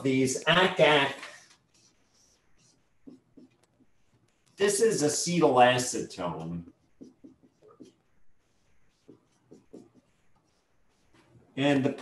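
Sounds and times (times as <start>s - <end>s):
marker writing on a whiteboard: 0.0s - 12.0s.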